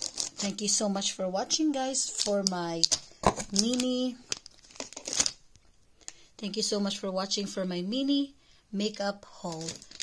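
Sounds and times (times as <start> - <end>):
plastic packaging crinkling: 0.0 - 0.6, 2.0 - 6.2, 9.4 - 10.0.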